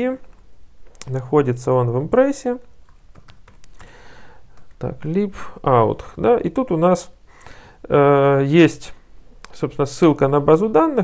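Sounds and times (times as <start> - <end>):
man speaking: 0.0 - 0.2, 1.0 - 2.7, 4.8 - 7.2, 7.8 - 11.0
keyboard keystrokes: 2.9 - 3.9.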